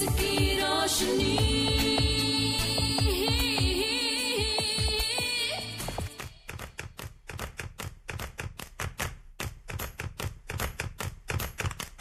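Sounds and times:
rapid sharp taps: 0:06.0 - 0:12.0.

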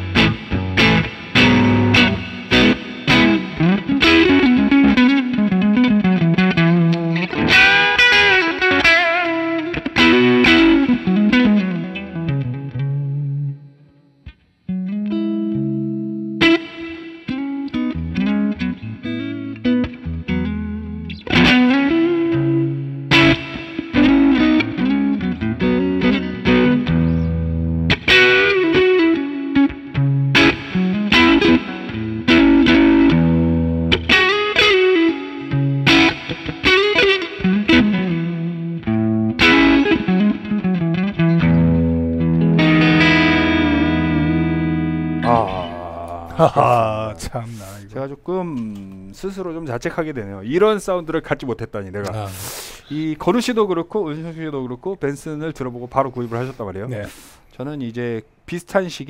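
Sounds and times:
overdriven electric guitar: 0:00.0 - 0:46.3.

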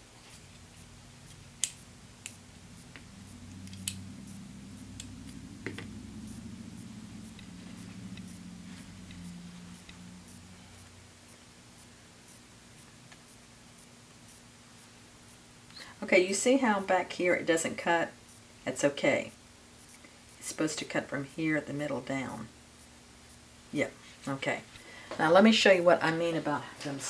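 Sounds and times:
faint low hum: 0:00.0 - 0:27.0
metallic shears clicking: 0:00.3 - 0:14.4.

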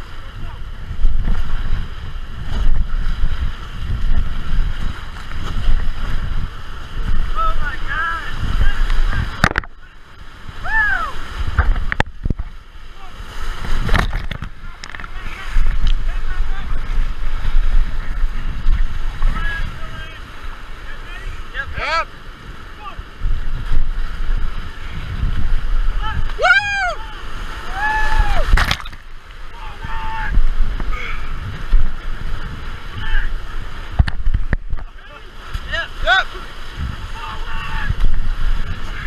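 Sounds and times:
whitewater rapids rushing: 0:00.0 - 0:39.0
wind buffeting microphone: 0:00.0 - 0:39.0.

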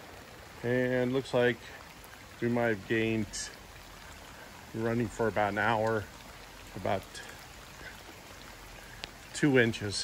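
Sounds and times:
rain on pool water and concrete: 0:00.0 - 0:10.0.

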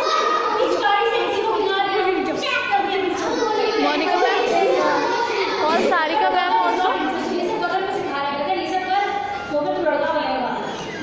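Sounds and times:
children chattering: 0:00.0 - 0:11.0
woman telling a story: 0:00.6 - 0:04.7, 0:05.6 - 0:10.7.

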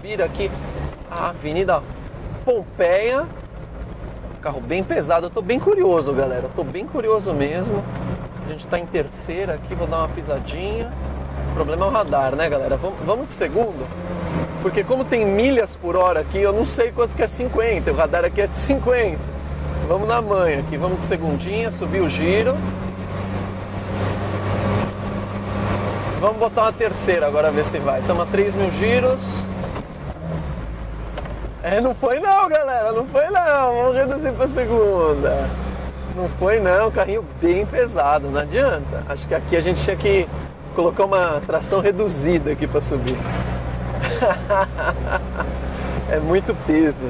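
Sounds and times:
diesel engine labouring uphill: 0:00.0 - 0:47.0.

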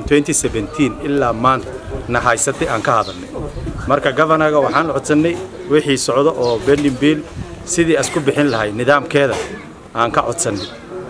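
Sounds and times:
man speaking animatedly: 0:00.0 - 0:10.8.

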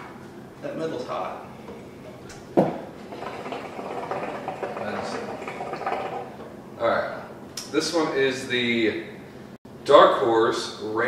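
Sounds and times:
hookah water bubbling: 0:01.6 - 0:06.8.

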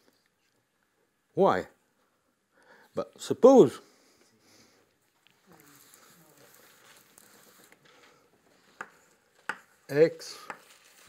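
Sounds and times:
chalk tapping on blackboard: 0:08.6 - 0:09.8, 0:10.4 - 0:10.7
person speaking: 0:09.6 - 0:10.9.

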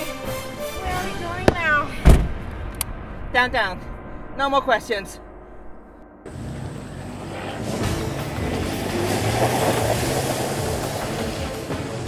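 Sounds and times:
music: 0:00.0 - 0:02.0, 0:06.7 - 0:12.0
vehicle pulling away: 0:06.3 - 0:12.0.

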